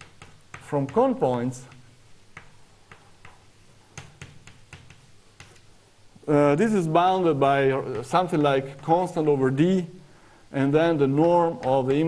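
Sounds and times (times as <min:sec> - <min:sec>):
chalk tapping on blackboard: 0:00.0 - 0:05.7.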